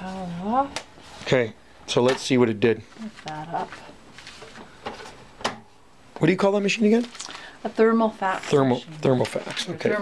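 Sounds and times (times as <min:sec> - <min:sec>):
soft knocks and paper rustles: 0:02.0 - 0:05.6, 0:08.3 - 0:09.9.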